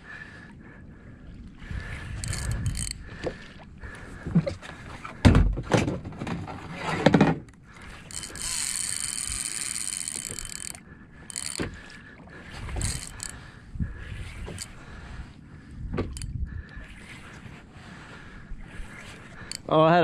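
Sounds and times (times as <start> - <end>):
fishing reel drag screaming: 1.8 - 3.0, 7.7 - 14.8, 18.7 - 19.8.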